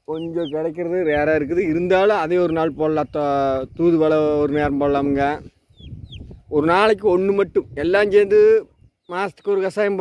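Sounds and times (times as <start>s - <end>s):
chickens clucking: 0.0s - 3.6s
high falling peeps: 0.0s - 3.6s
man speaking: 0.0s - 5.5s, 6.5s - 10.0s.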